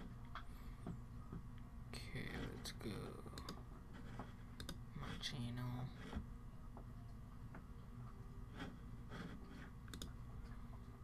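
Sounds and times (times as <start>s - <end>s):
computer mouse and keyboard clicks: 3.2s - 5.2s, 8.6s - 10.2s.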